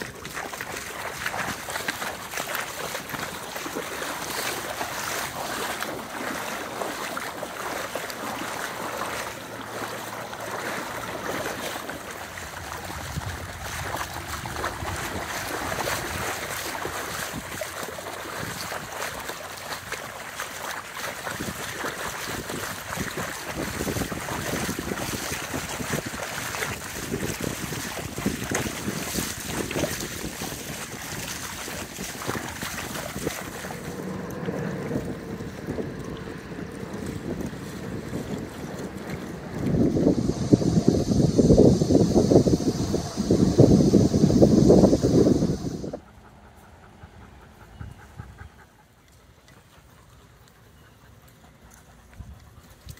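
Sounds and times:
dogs splashing through water: 0:00.0 - 0:52.9
wind on microphone: 0:10.8 - 0:46.1.

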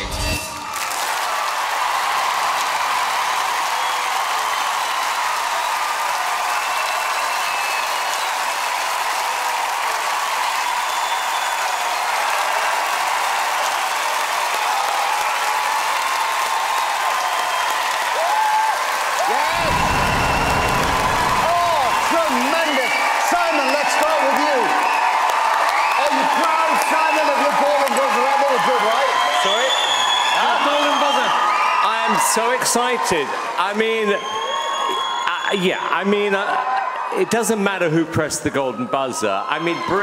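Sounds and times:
audience applauding and cheering: 0:00.0 - 0:40.0
shouts and whoops: 0:00.4 - 0:37.3, 0:38.7 - 0:40.0
loud voices: 0:19.2 - 0:24.7
low rumble: 0:19.5 - 0:22.1.

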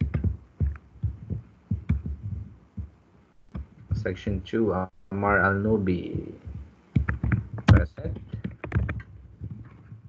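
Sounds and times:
keyboard and mouse clicking: 0:06.4 - 0:10.0.

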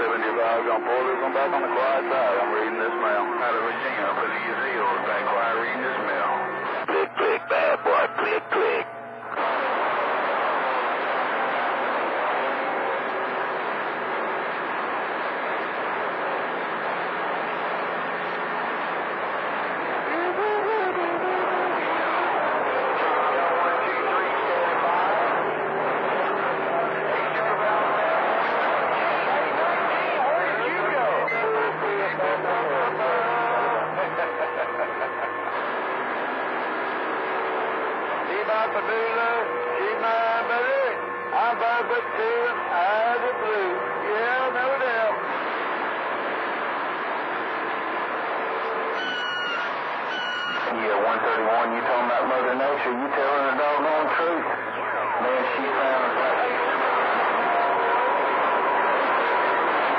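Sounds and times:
garbled radio voices: 0:00.0 - 0:11.4, 0:17.8 - 0:47.8, 0:48.7 - 0:59.9
radio static: 0:00.0 - 0:59.9
low whistling tones: 0:48.9 - 0:50.7.

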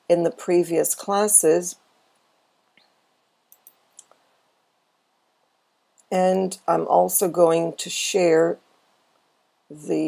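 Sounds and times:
computer mouse clicks: 0:03.5 - 0:04.2.

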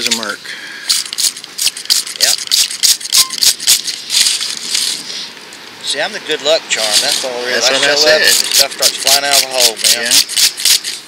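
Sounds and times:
soil rustling and crunching: 0:06.7 - 0:11.0.

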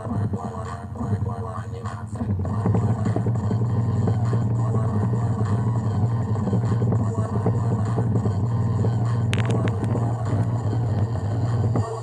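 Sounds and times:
bass-heavy song from speaker: 0:00.0 - 0:12.0.

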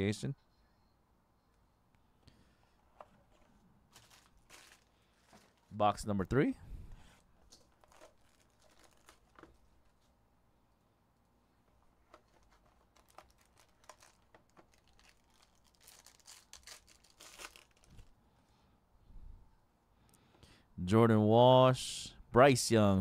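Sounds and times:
plastic wrapping tearing and crinkling: 0:03.9 - 0:05.8, 0:07.6 - 0:09.5, 0:12.2 - 0:18.1.

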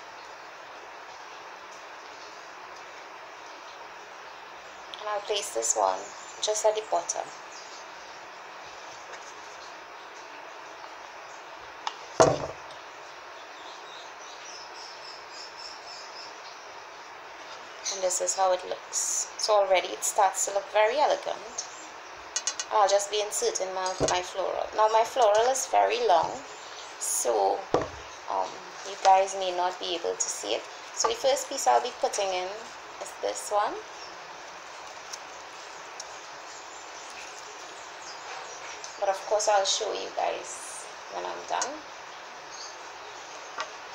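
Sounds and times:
steady low hiss: 0:00.0 - 0:43.9
glass vase knock: 0:12.2 - 0:12.6, 0:27.7 - 0:28.0.

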